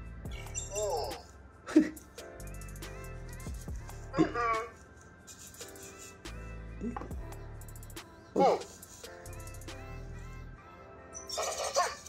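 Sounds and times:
background music with steady beat: 0.0s - 12.0s
chirpy electronic robot voice: 0.3s - 1.3s, 11.1s - 12.0s.

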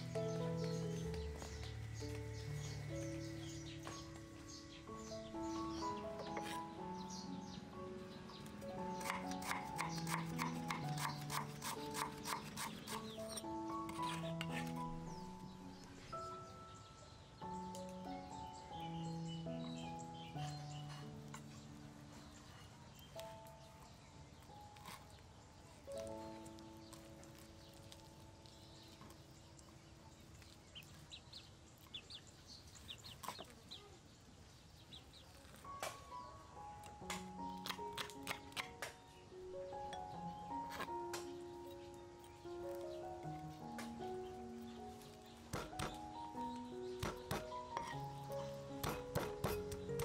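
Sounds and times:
high bird chirps: 0.0s - 21.8s
background music: 0.0s - 32.6s, 34.8s - 50.0s
knife chopping on wooden block: 9.0s - 14.7s, 45.5s - 46.0s, 47.0s - 48.0s, 48.8s - 49.9s.

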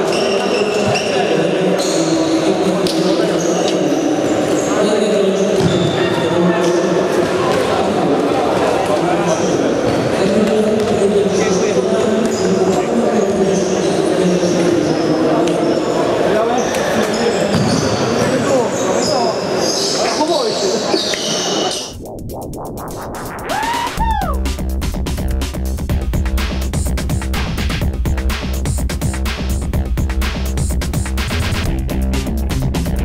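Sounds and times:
shoes squeaking on hall floor: 0.0s - 7.9s, 8.6s - 21.9s
echoing chatter of players: 0.0s - 22.0s
people talking: 0.0s - 22.0s.

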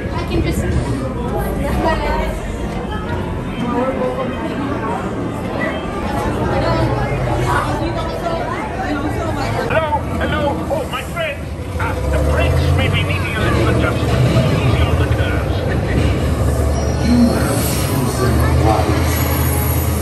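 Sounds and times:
ride vehicle rumbling: 0.0s - 20.0s
voices chattering in crowd: 0.0s - 20.0s.

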